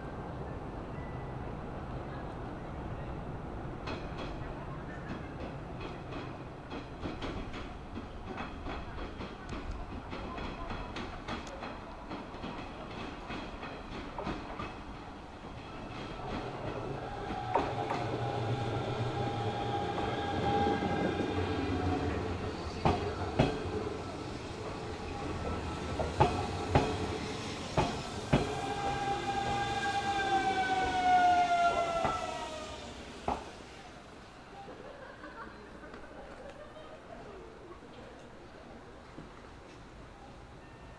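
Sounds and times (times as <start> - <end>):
train wheels clicking over rail joints: 3.8 - 33.7
electric train passing: 12.0 - 35.7.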